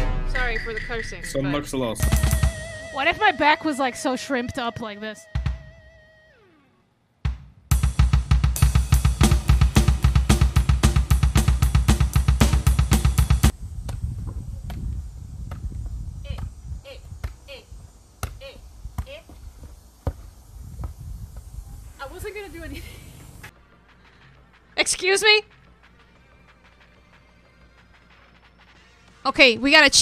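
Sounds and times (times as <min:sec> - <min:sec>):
bass drum: 0:00.0 - 0:03.9, 0:07.3 - 0:16.6
electronic drum kit played fast: 0:00.0 - 0:04.8, 0:07.3 - 0:13.5.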